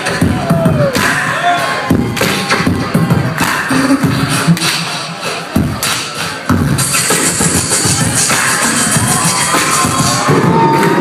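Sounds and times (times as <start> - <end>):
amplified beatboxing: 0.0 - 11.0.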